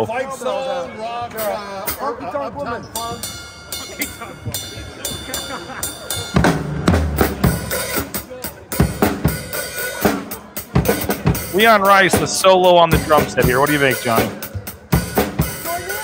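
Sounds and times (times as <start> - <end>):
bass drum and toms: 4.5 - 8.2, 8.8 - 15.9.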